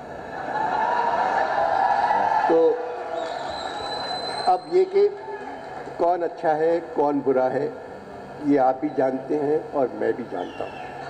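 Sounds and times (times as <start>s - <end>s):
audience applauding: 0.9s - 4.6s
man speaking: 8.4s - 10.8s.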